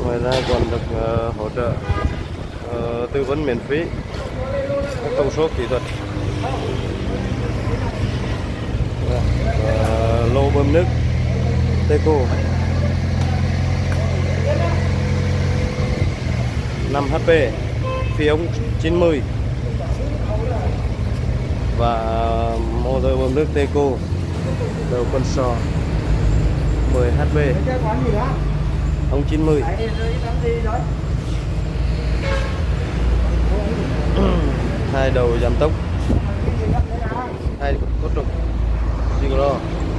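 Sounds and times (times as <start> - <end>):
speech fragments: 0.0 - 1.8
traffic rumble: 0.0 - 39.9
man speaking: 2.6 - 8.3, 9.0 - 11.0, 21.7 - 25.8, 26.9 - 31.0, 33.4 - 39.8.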